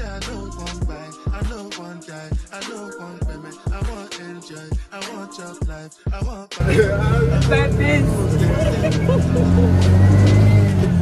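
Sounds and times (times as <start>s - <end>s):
background music: 0.0s - 11.0s
people's voices: 6.6s - 10.5s
auto-rickshaw engine running: 6.6s - 11.0s.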